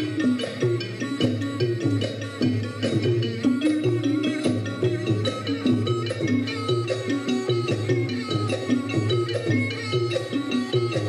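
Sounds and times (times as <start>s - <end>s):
pitched percussion notes: 0.0s - 11.0s.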